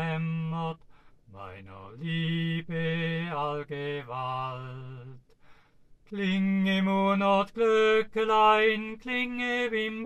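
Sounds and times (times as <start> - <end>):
man singing unaccompanied: 0.0 - 5.4, 6.0 - 10.0.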